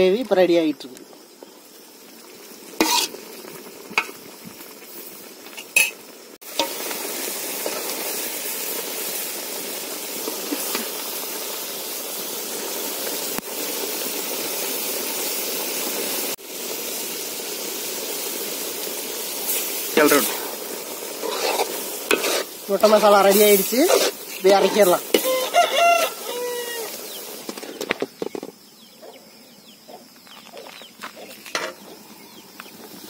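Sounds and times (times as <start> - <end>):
gravy sizzling in a pot: 0.0 - 33.0
metal ladle scraping a pot: 2.8 - 3.2, 21.2 - 22.6.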